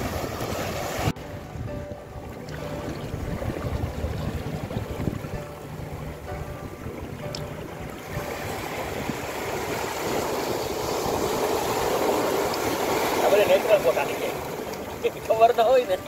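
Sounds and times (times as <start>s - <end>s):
surf washing over rocky shore: 0.0s - 1.2s, 7.0s - 16.0s
wind rumble on microphone: 0.0s - 13.3s.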